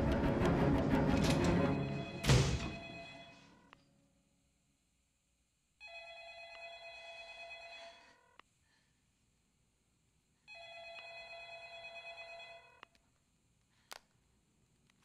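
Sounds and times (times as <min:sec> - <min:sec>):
telephone ringing: 0:02.7 - 0:03.5, 0:05.8 - 0:08.2, 0:10.5 - 0:12.8.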